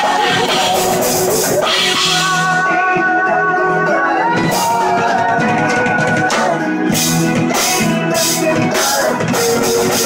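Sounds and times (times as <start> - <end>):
drums: 0.0 - 10.0
electric guitar: 0.0 - 10.0
live rock band playing: 0.0 - 10.0.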